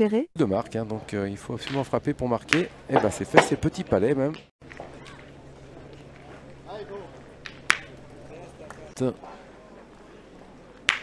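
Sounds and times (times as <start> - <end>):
metal boules clacking: 1.6 - 9.0.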